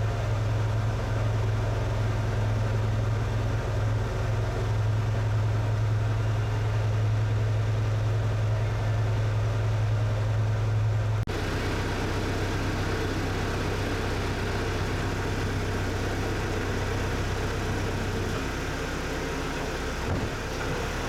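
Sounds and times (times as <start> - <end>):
boat engine humming: 0.0 - 21.0.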